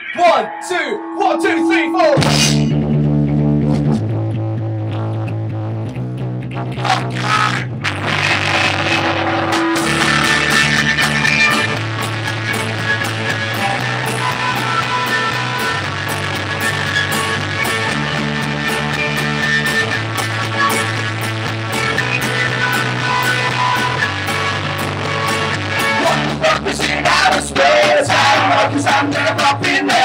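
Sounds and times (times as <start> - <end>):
bass guitar low notes: 0.0 - 30.0
electric guitar: 0.0 - 30.0
drums: 6.9 - 30.0.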